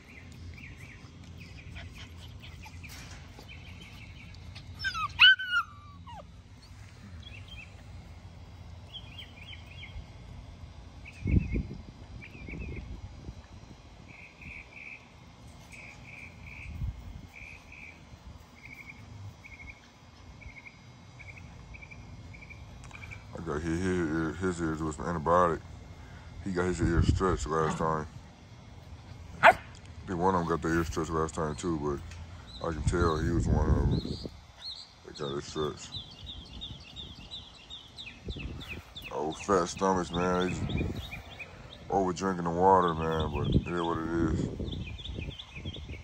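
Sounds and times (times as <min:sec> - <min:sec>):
puppy whining: 0:01.5 - 0:06.8.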